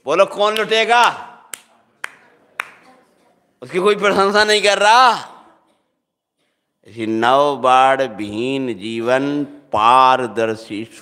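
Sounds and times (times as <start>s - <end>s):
man talking: 0.0s - 1.4s, 3.6s - 5.4s.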